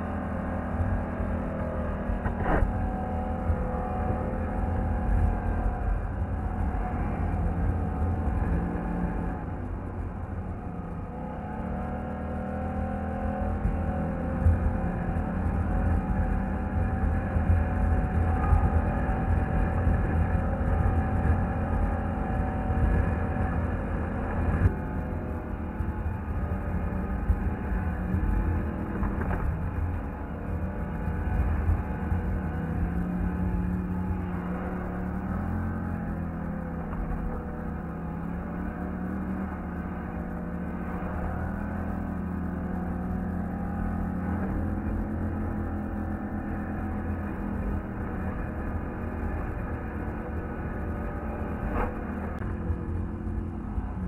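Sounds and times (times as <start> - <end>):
quad bike engine running: 0.0 - 54.0.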